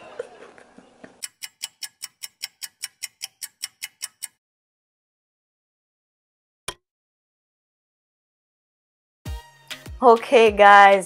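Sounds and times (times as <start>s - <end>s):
clock ticking: 1.2s - 4.4s.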